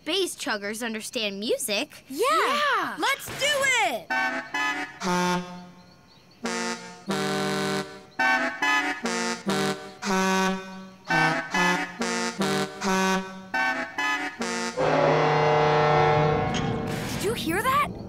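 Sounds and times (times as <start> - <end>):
cartoon train horns honking: 4.1 - 5.8, 6.4 - 17.2.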